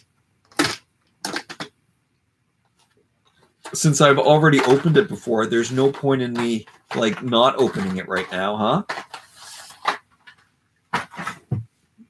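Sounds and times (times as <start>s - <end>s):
plastic packaging rustling: 3.4s - 11.5s.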